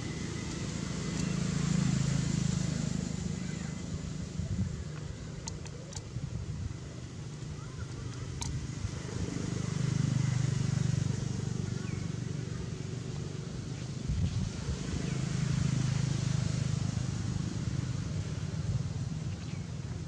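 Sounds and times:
low engine hum: 0.0 - 20.0.

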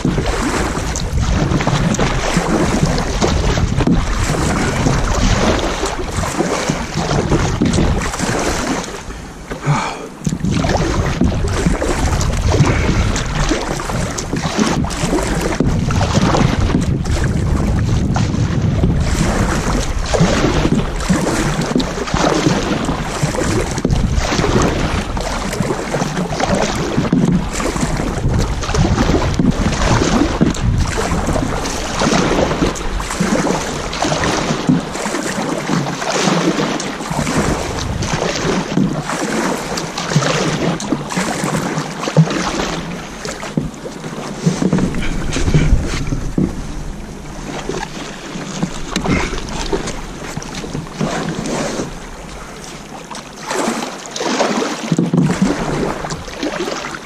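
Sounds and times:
wind rumble on microphone: 0.0 - 36.0, 36.8 - 52.9
kayak paddle splashing: 0.0 - 57.0.

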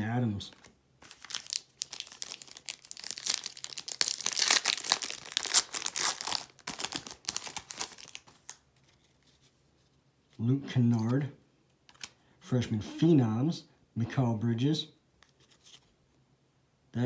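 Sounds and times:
foil pack tearing and crinkling: 1.0 - 8.6.

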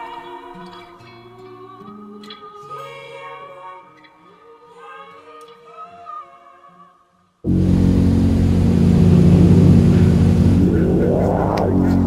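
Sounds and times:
propeller plane engine droning: 7.5 - 12.0.

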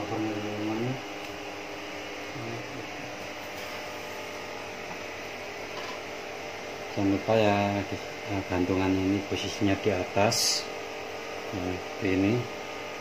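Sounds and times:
background hum and hiss: 0.0 - 13.0.

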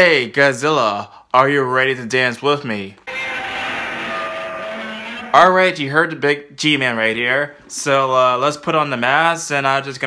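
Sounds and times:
monster roar: 3.1 - 5.8.

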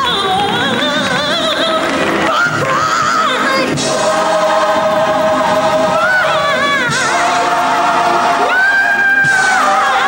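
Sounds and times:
gospel choir holding chord: 2.1 - 10.0.

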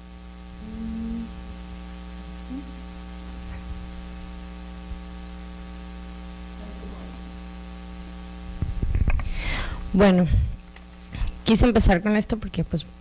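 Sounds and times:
electrical mains hum: 0.0 - 13.0
faint hiss: 0.6 - 1.6.

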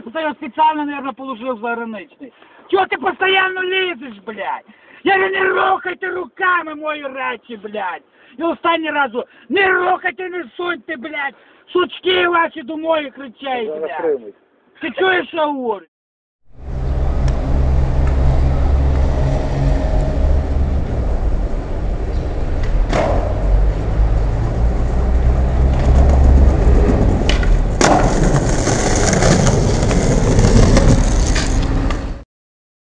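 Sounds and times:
skateboard wheels rolling on pavement: 16.6 - 32.2
skateboard clacks: 25.7 - 32.1.

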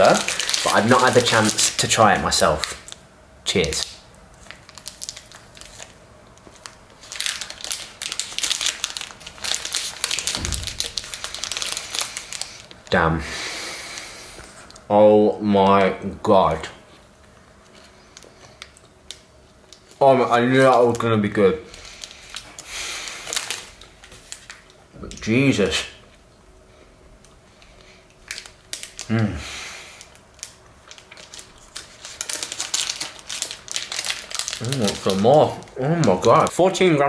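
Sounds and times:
wrapper crinkling: 0.0 - 13.0, 17.6 - 25.2, 27.7 - 29.2, 29.9 - 36.6.

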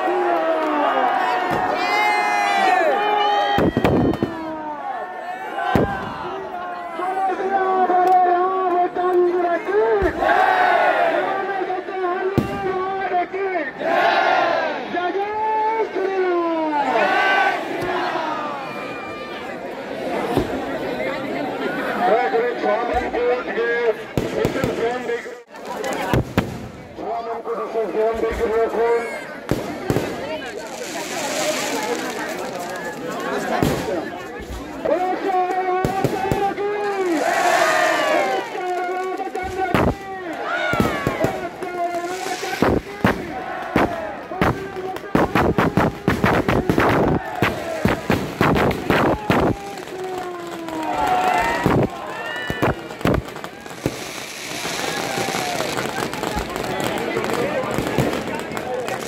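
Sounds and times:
crowd shouting: 0.0 - 26.2, 28.3 - 59.0
firecrackers banging and crackling: 3.6 - 4.6, 24.0 - 27.0, 29.4 - 34.9, 35.6 - 59.0.

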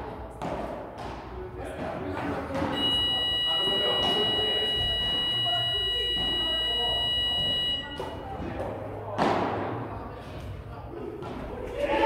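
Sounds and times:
electronic buzzer shrill tone: 2.8 - 8.2.

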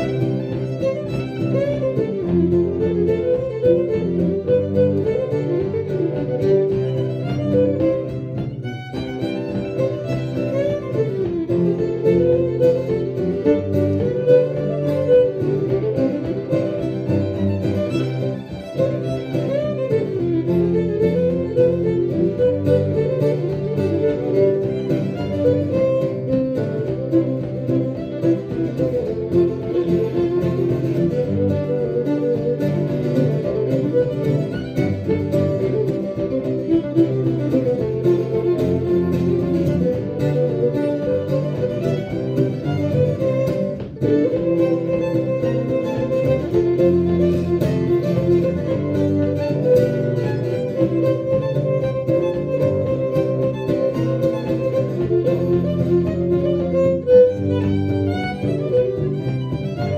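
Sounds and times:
acoustic guitar: 0.0 - 59.9
cello: 0.0 - 59.9
fiddle: 0.0 - 59.9.

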